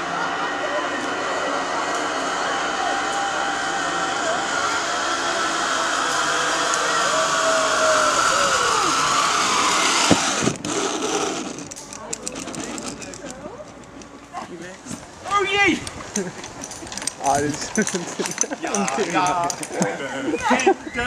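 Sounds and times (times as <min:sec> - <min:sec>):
pulley whirring on steel cable: 0:00.0 - 0:14.1.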